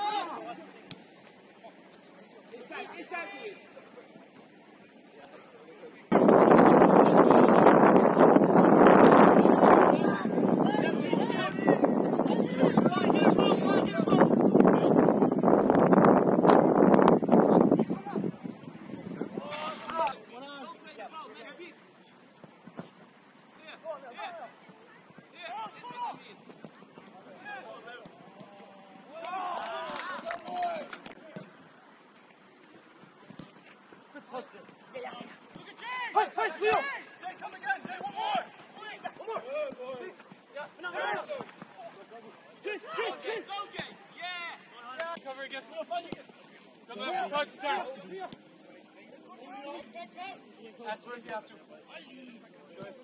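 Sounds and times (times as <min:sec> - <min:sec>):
footballers shouting: 0:00.0 - 0:00.6, 0:06.8 - 0:15.0, 0:23.6 - 0:32.0, 0:34.2 - 0:48.4
wind buffeting microphone: 0:06.1 - 0:19.4.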